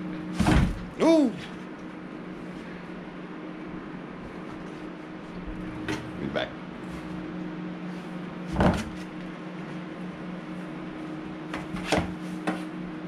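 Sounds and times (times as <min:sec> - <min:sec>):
appliance electrical hum: 0:00.0 - 0:13.0.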